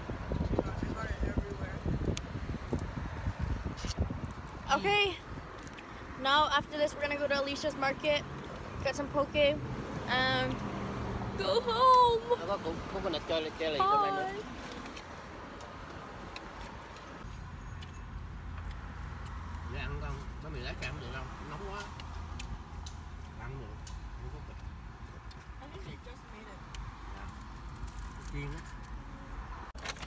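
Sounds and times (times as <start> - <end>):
paper box rustling and clicking: 29.8 - 30.0.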